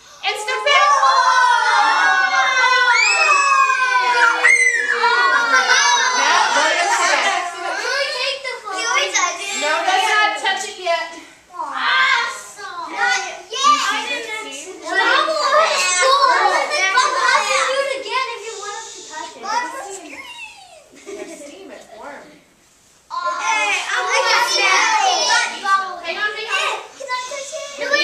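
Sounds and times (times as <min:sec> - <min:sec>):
children shrieking and exclaiming: 0:00.0 - 0:10.3, 0:11.5 - 0:21.0, 0:23.1 - 0:28.0.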